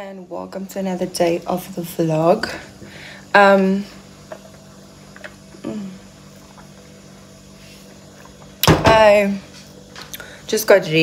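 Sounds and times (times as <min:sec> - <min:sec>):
low steady hum: 0:00.0 - 0:11.0
woman humming mm: 0:05.5 - 0:06.2.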